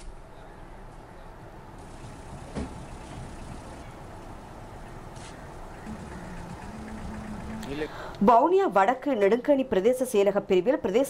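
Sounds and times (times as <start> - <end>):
low outdoor rumble: 1.4 - 8.4
vehicle engine running: 1.8 - 7.9
single thump: 2.5 - 2.8.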